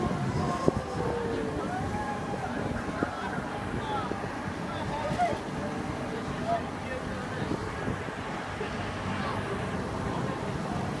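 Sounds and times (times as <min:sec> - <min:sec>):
faint voices: 0:00.0 - 0:11.0
pendulum ride mechanical noise: 0:00.0 - 0:11.0.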